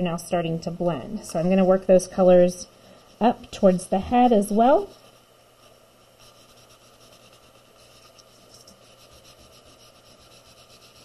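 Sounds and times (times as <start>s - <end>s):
paper towel scrubbing paper: 3.2s - 11.0s.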